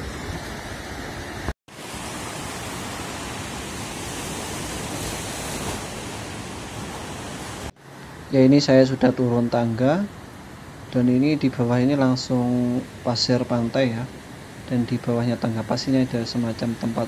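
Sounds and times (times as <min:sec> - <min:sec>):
ocean surf breaking waves: 0:00.0 - 0:17.0.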